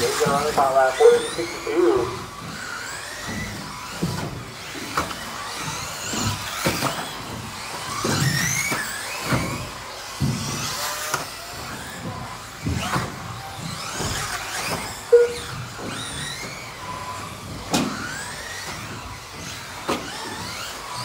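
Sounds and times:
rc car motors whining: 0.0 - 21.0.

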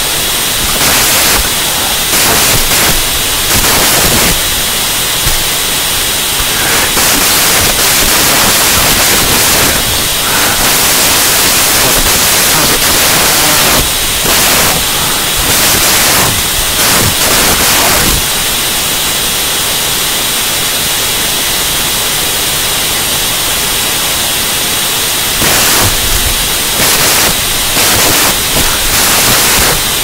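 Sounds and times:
electronic static hiss: 0.0 - 30.0.

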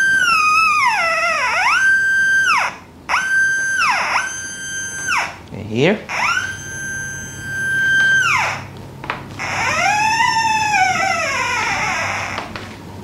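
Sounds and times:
metal detector tone sweeping up: 1.8 - 5.3, 6.1 - 8.6
lower rising and falling tone: 9.4 - 12.4.

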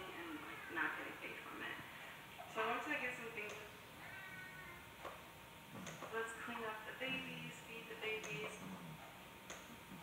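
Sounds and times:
high-pitched cry: 4.0 - 4.8.

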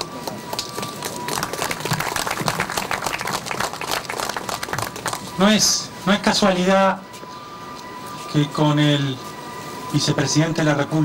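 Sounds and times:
audience applause: 0.0 - 5.4.

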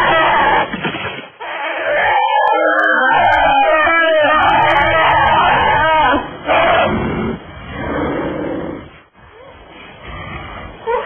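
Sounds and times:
bear roaring: 1.4 - 11.0.

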